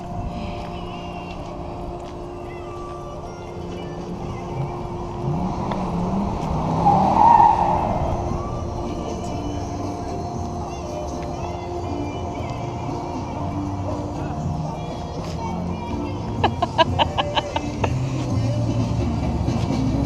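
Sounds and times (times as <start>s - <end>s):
steady hum: 0.0s - 18.2s
car engine revving: 2.8s - 20.0s.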